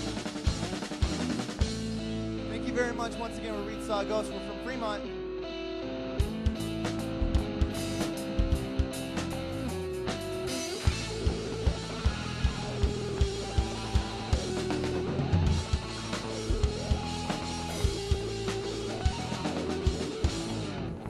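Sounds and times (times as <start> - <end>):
drum kit: 0.0 - 3.8, 6.2 - 20.9
distorted electric guitar: 0.0 - 21.0.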